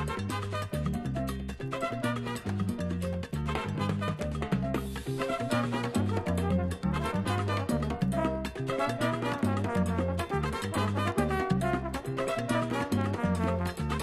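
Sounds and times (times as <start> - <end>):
dance band with brass: 0.0 - 1.0, 1.7 - 2.8, 3.4 - 14.0
repeating bass line: 0.0 - 14.0.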